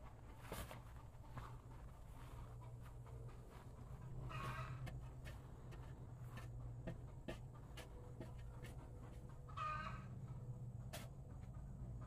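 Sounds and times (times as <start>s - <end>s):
steady low hum: 0.0s - 12.0s
chicken calls: 2.6s - 5.2s, 9.3s - 10.4s.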